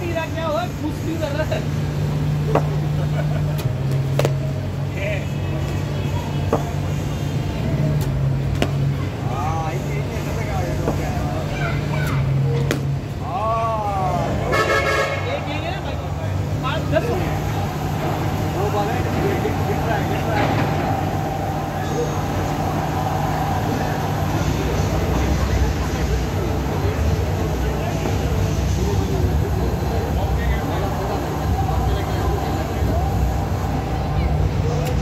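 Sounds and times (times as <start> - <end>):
indistinct voices: 4.7 - 35.0
steady low hum: 15.2 - 35.0.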